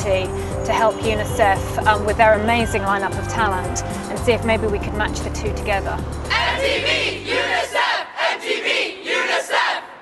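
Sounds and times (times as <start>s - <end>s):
crowd chanting in unison: 6.3s - 10.0s.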